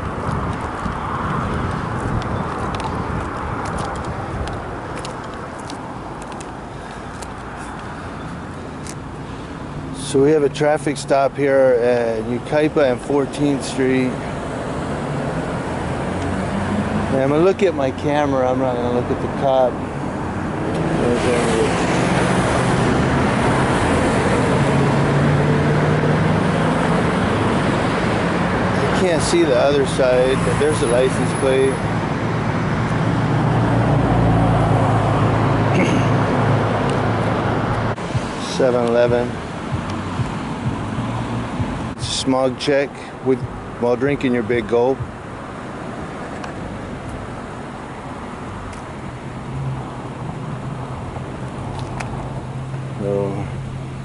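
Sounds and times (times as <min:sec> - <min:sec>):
road rumble: 0:00.0 - 0:54.0
vehicle engine hum: 0:00.0 - 0:54.0.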